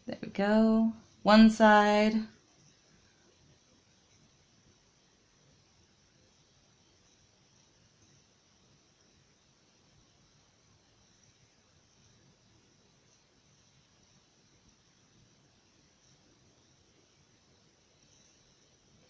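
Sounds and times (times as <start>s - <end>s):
steady hiss: 0.0s - 19.0s.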